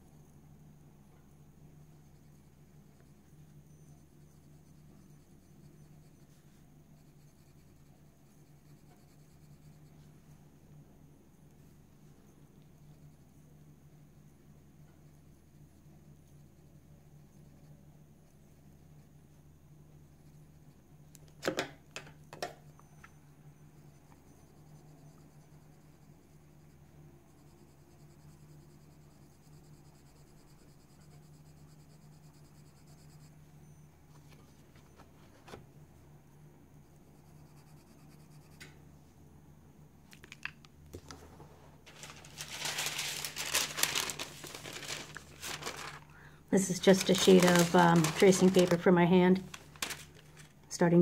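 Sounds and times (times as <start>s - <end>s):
low steady hum: 0.0s - 51.0s
tracing paper crinkling: 41.8s - 50.6s.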